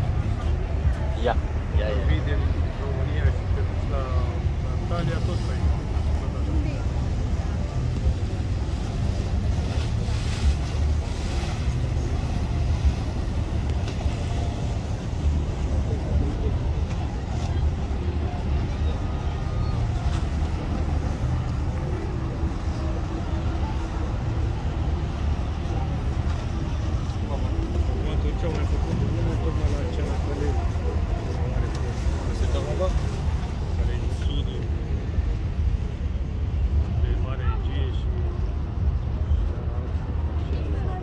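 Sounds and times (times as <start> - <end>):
boat engine rumbling: 0.0 - 37.0.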